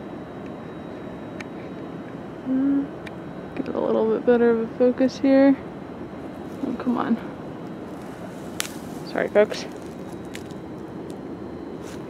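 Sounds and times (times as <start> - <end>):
outdoor background hiss: 0.0 - 12.0
rustling brush of branch: 6.4 - 6.9, 7.8 - 11.2, 11.8 - 12.0.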